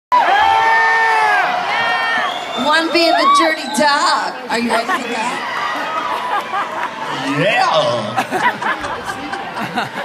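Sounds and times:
audience cheering: 0.1s - 8.2s
high-pitched whoop: 3.0s - 3.8s.

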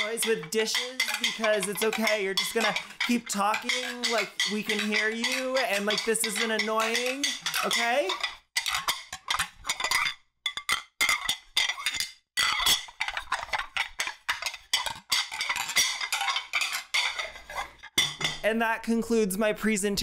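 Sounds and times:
ceramic plates clattering: 0.0s - 18.4s.

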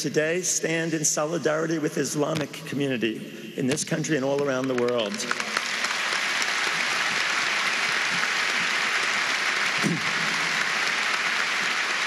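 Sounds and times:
audience applauding: 4.4s - 12.0s.

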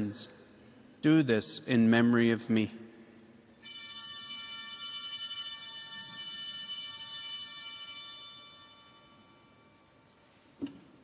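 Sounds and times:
altar bells ringing: 3.4s - 10.0s.

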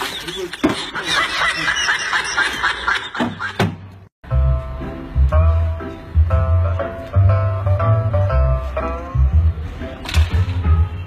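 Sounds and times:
snickering laughter: 0.2s - 3.6s.

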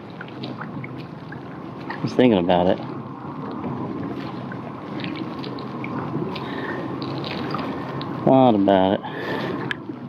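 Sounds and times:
water washing along a hull: 0.0s - 10.0s.

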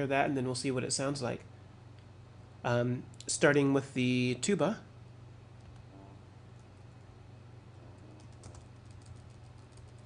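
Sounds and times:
low steady hum: 0.0s - 10.0s
keyboard and mouse clicking: 8.1s - 10.0s.

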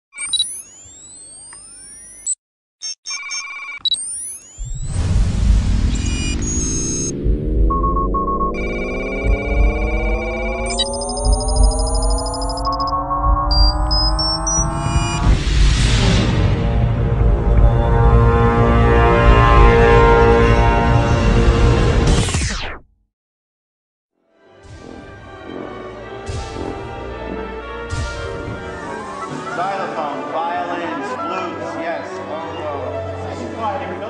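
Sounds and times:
beeping chirping sweeps: 0.2s - 5.2s, 5.8s - 15.3s
electronic logo music: 3.9s - 22.7s
bright crash: 4.6s - 7.3s
deep rumble: 4.6s - 21.0s.

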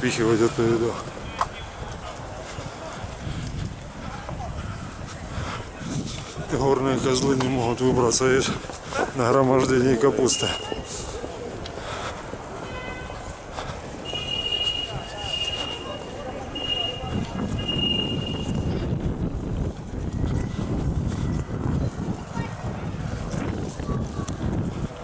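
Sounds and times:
indistinct voices of passers-by: 0.0s - 25.0s
traffic noise: 0.0s - 25.0s
high thin tone: 14.0s - 18.6s.

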